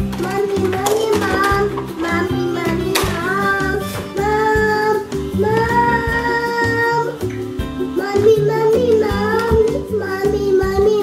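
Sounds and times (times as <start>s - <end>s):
song with sung melody and bass: 0.1s - 11.0s.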